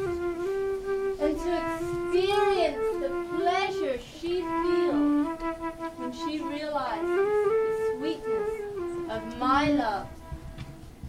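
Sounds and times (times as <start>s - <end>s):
high melody with sliding glides: 0.0s - 11.0s.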